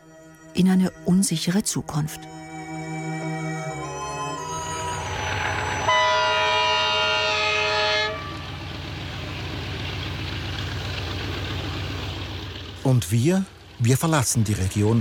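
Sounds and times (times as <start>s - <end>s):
train rumbling past: 3.7s - 15.0s
locomotive horn: 4.5s - 8.8s.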